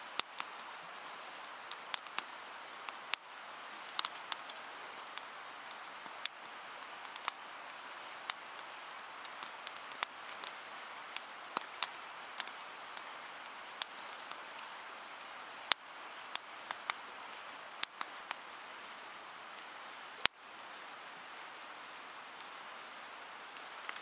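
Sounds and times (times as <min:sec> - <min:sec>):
river running: 0:00.0 - 0:24.0
sharp pops or ticks: 0:00.1 - 0:00.7, 0:01.7 - 0:07.4, 0:08.3 - 0:10.6, 0:11.2 - 0:13.1, 0:13.8 - 0:14.7, 0:15.7 - 0:18.4.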